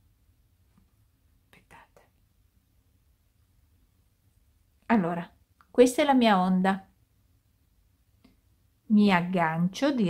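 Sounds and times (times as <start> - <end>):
faint whisper: 1.4 - 2.2.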